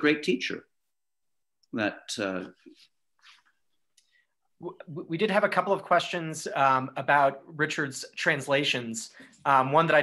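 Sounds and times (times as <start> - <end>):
man speaking: 0.0 - 0.8, 1.6 - 2.8, 4.6 - 10.0.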